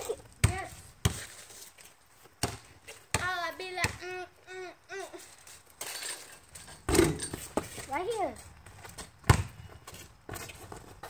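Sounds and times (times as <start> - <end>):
basketball bouncing on hard ground: 0.0 - 4.2, 6.8 - 11.0.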